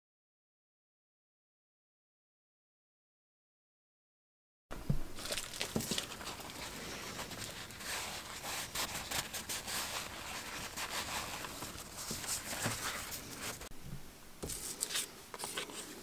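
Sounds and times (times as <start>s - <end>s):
paper towel rustling and crinkling: 5.1s - 13.7s, 14.4s - 16.0s.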